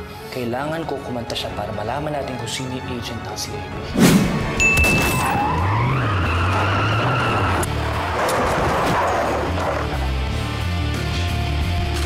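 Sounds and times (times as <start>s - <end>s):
tires squealing on pavement: 5.1s - 10.2s.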